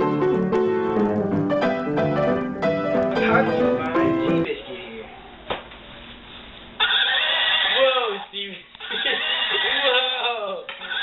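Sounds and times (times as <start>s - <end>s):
horse whinnying: 6.8s - 8.2s, 8.8s - 11.0s.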